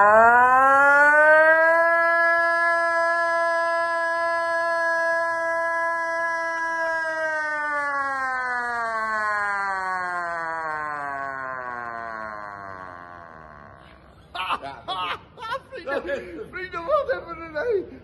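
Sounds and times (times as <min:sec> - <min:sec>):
man imitating a siren: 0:00.0 - 0:14.6.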